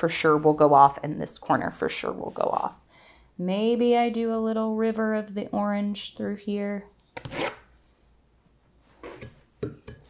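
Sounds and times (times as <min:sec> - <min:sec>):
palette knife scraping paint: 0:07.1 - 0:07.7.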